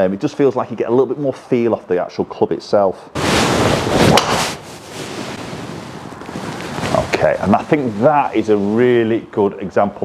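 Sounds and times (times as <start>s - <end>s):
steady rushing hiss: 3.2s - 9.8s.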